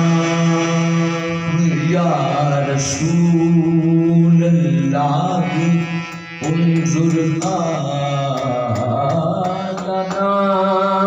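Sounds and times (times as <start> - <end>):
harmonium drone: 0.0 - 11.0
man singing devotional phrases: 0.0 - 11.0.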